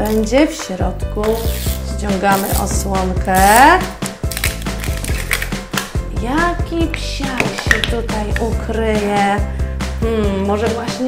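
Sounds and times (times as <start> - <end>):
plastic label crackling as torn: 1.2 - 5.9.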